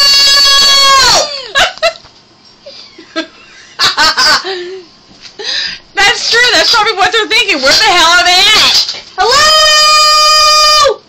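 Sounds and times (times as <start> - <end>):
woman yelping: 0.0 - 1.4, 7.6 - 11.0
laughter: 1.3 - 2.1, 2.7 - 4.8.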